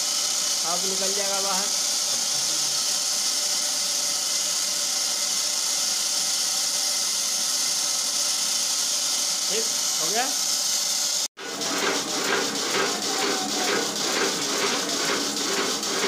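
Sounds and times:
workshop machinery motor hum: 0.0 - 16.0.

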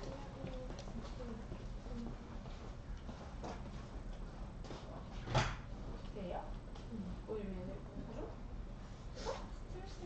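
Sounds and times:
hall room noise: 0.0 - 10.0.

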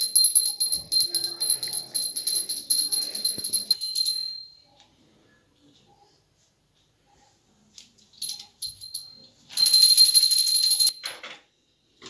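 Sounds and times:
small brass hand bell ringing: 0.0 - 4.7, 8.2 - 11.0.

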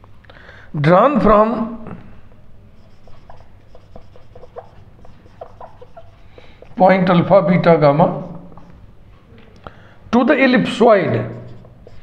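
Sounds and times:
marker squeaking on whiteboard: 2.7 - 8.8, 10.8 - 12.0.

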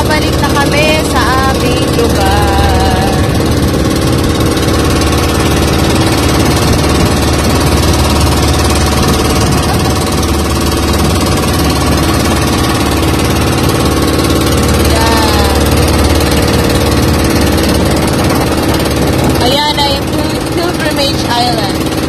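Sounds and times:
boat engine running: 0.0 - 22.0.

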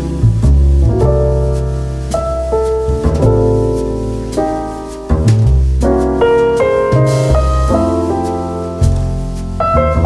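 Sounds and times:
piano melody over bass line: 0.0 - 10.0.

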